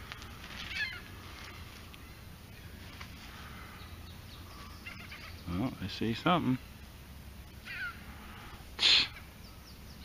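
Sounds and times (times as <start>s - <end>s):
short sharp breath: 8.1s - 9.2s.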